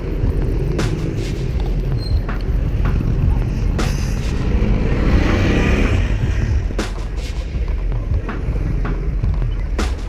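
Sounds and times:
motor vehicles running: 0.0s - 10.0s
road rumble: 0.0s - 10.0s.

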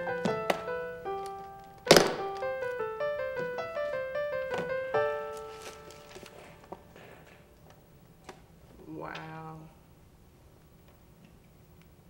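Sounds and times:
soft piano music: 0.0s - 7.6s
briefcase latches snapping open: 1.8s - 2.5s.

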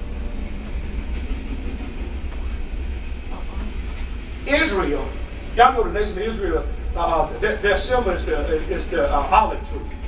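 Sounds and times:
low rumble of room noise: 0.0s - 10.0s.

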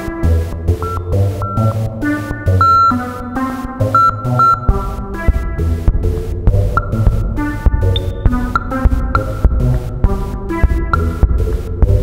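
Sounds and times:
synthesizer arpeggio: 0.8s - 11.5s
drum machine thuds and clicks: 4.0s - 12.0s.

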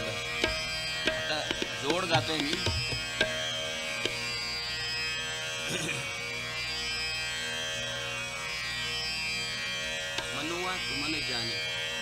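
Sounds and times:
tanpura drone: 0.0s - 12.0s.

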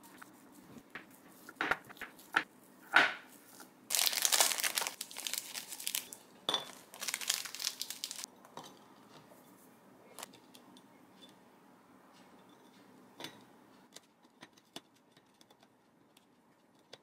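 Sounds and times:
plastic packaging crinkling: 3.9s - 8.3s.

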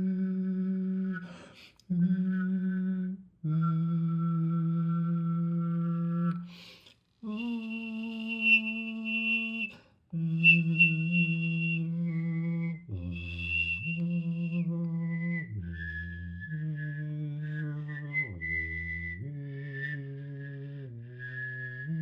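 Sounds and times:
person whistling and throat singing: 0.0s - 22.0s.

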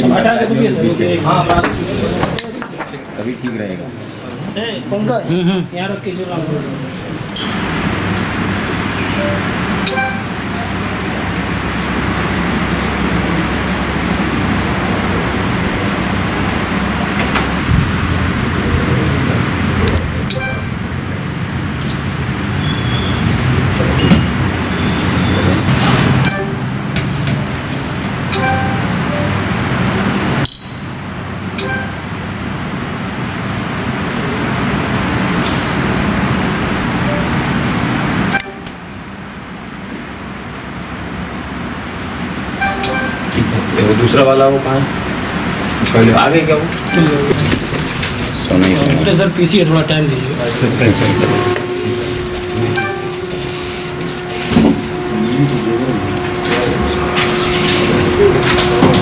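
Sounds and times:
road traffic din: 0.0s - 59.0s
faint horn-like tones: 50.2s - 59.0s
low hum: 50.6s - 59.0s.

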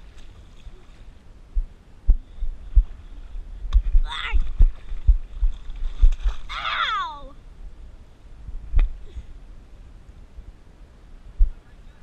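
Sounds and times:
water sloshing against camera: 2.6s - 7.1s.

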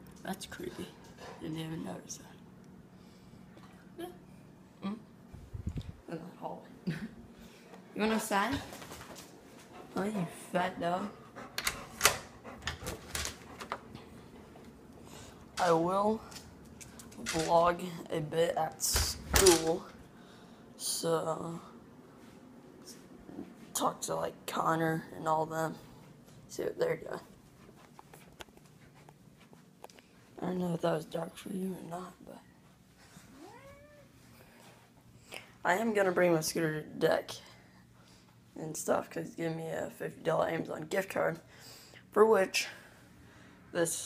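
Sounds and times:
pet's rising cry: 33.3s - 34.1s.

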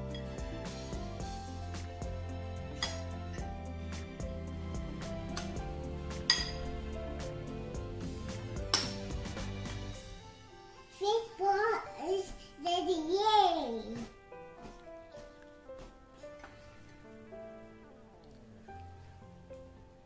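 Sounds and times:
instrumental music: 0.0s - 20.0s
spoon clinking against glass bowl: 6.3s - 6.7s.

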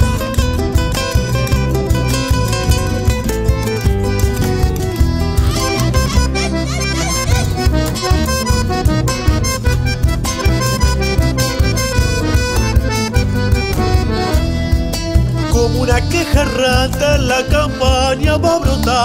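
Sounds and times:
accordion playing melody: 0.0s - 19.0s
bass: 0.0s - 19.0s
guitar: 0.0s - 19.0s.

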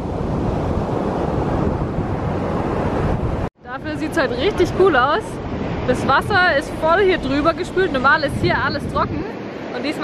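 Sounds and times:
ocean surf breaking on beach: 0.0s - 10.0s
wind rumbling on microphone: 0.0s - 10.0s.

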